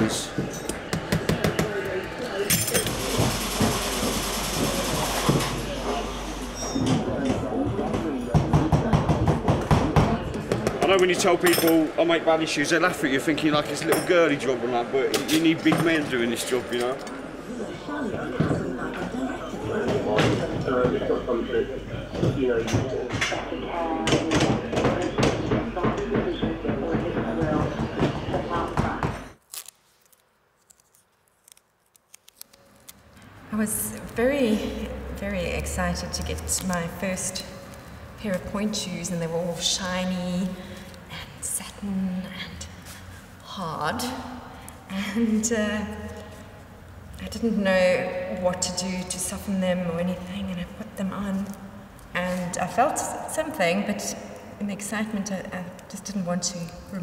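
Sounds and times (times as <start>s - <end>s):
low hum of workshop machinery: 0.0s - 29.4s
tape clicks and crinkles: 29.4s - 33.2s.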